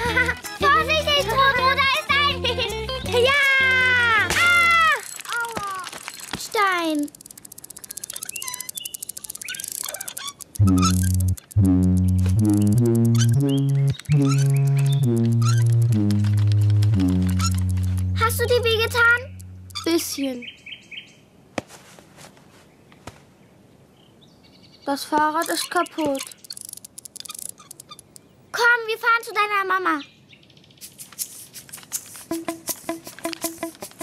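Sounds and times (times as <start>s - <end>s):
fast run of ticks: 4.9s - 20.0s, 25.4s - 28.3s, 30.8s - 34.0s
scattered clicks: 4.9s - 20.0s, 25.2s - 28.3s
high chirping warbles: 6.9s - 20.2s, 25.4s - 28.3s
low tune of held notes: 10.5s - 20.0s.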